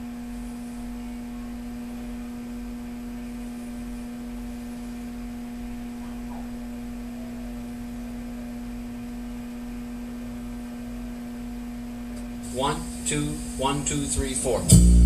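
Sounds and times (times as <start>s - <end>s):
steady constant hum: 0.0s - 15.0s.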